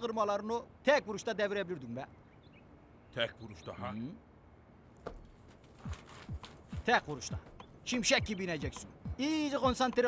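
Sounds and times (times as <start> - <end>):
man speaking: 6.7 - 10.0.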